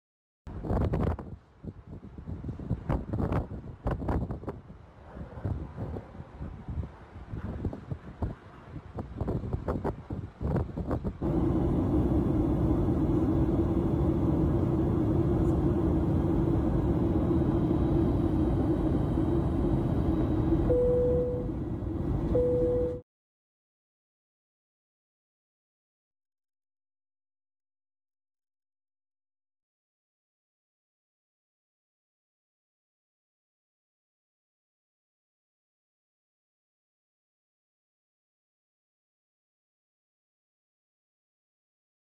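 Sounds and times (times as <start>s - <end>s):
gusting rumbles and knocks: 2.7s - 20.7s
airliner cabin noise: 10.5s - 23.0s
short steady tone: 11.2s - 23.0s.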